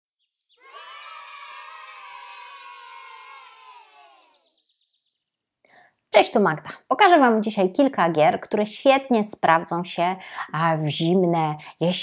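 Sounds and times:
children cheering: 0.6 - 4.4.

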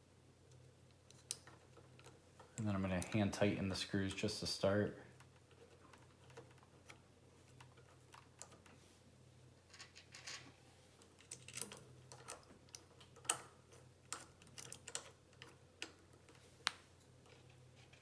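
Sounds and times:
small metal clicks: 0.4 - 3.4, 9.7 - 18.0.

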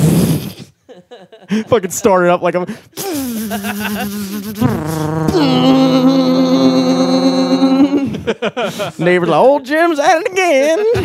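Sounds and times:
man imitating machine with voice: 3.0 - 8.1
higher vocal drone: 3.1 - 8.2.

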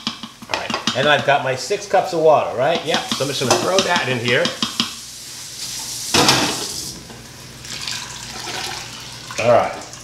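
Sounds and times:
water pouring into a pot: 7.6 - 10.0.

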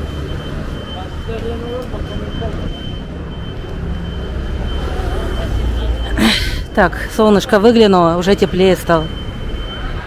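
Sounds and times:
faint chatter of passers-by: 0.0 - 10.0
thin steady high tone: 0.0 - 10.0
vehicle engine rumble: 0.0 - 10.0.

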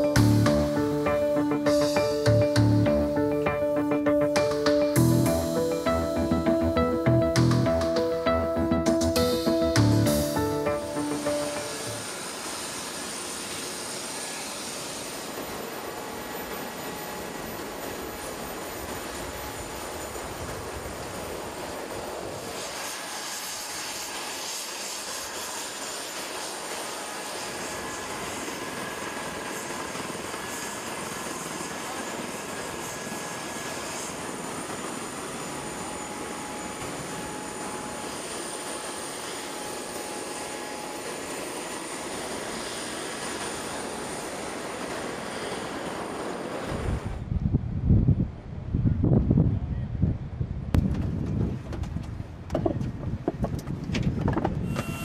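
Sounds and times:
high whining tones: 0.0 - 21.7
aircraft turbine noise: 0.0 - 48.7.

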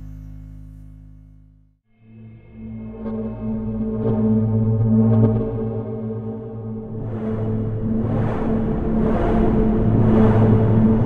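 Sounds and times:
low synth drone: 0.0 - 11.0
rushing noise layer: 4.3 - 11.0.

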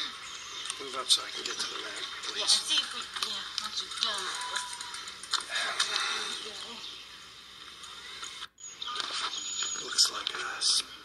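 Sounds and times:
indistinct voices: 0.0 - 7.0
outdoor background noise: 0.0 - 11.0.

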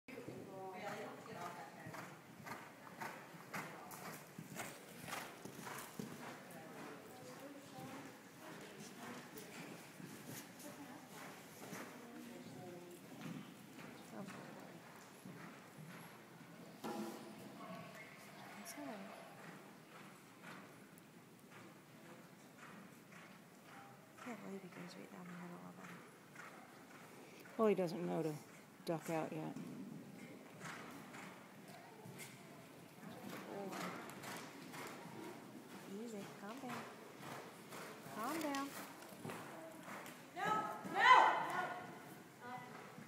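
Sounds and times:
horse hoofbeats cantering on sand: 0.2 - 16.7, 17.5 - 43.0.

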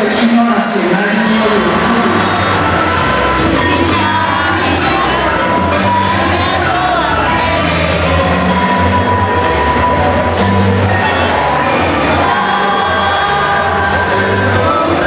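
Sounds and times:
mixed choir singing: 0.8 - 15.0.

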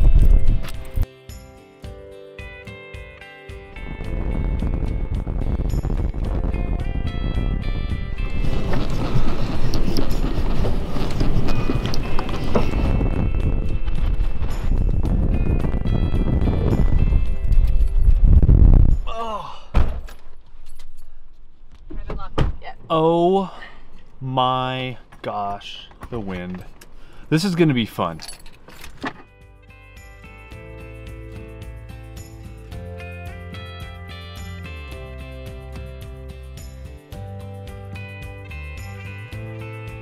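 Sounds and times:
wind buffeting microphone: 0.0 - 1.0, 3.8 - 19.1
background music: 0.0 - 19.4, 28.8 - 40.0.

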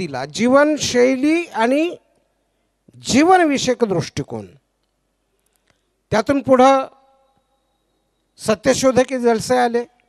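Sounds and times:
man speaking into a microphone: 0.0 - 2.1, 2.9 - 4.7, 6.1 - 7.3, 8.4 - 10.0.

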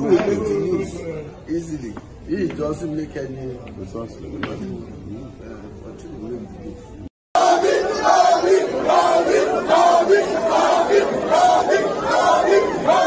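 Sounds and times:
crowd shouting and chanting: 7.4 - 13.0.

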